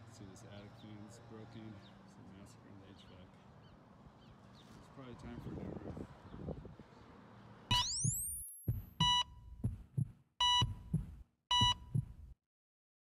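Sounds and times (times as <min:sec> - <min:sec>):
low heartbeat thumps: 0:07.7 - 0:12.4.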